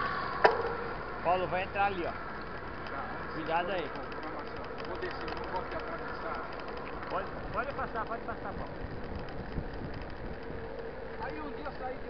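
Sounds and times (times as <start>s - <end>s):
bike tyres rolling on asphalt: 0.0s - 12.0s
faint steady hum: 0.0s - 12.0s
wind rushing over microphone: 6.6s - 12.0s.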